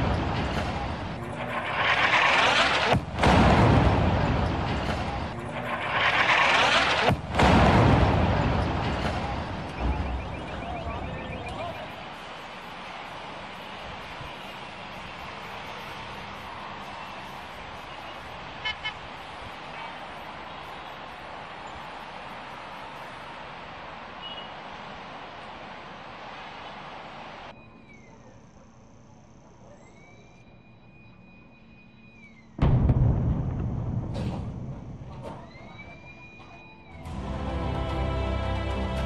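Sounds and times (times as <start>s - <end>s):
sharp cracks: 0.0s - 10.6s, 32.6s - 35.6s
distant explosion rumble: 0.0s - 12.4s, 32.6s - 36.2s
distant city traffic: 0.0s - 38.7s.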